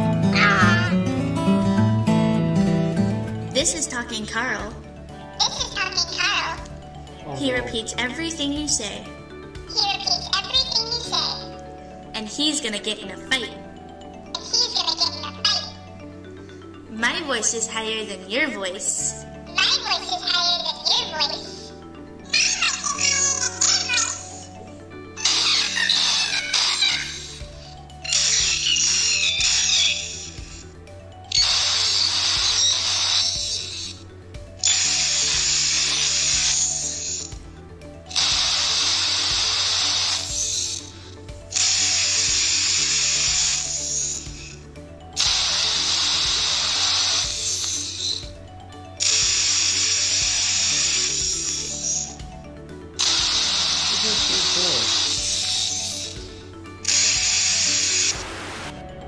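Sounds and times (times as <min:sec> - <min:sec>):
low tune: 0:00.0 - 0:05.4, 0:06.6 - 0:09.9
harsh buzzy high-pitched voice: 0:00.3 - 0:01.0, 0:07.2 - 0:08.3, 0:14.4 - 0:15.8, 0:22.3 - 0:24.4, 0:53.8 - 0:55.1.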